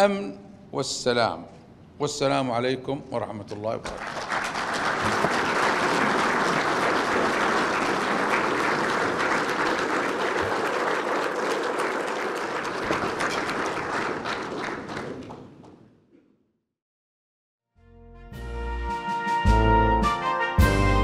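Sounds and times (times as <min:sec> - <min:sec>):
crowd applauding: 0:03.8 - 0:15.9.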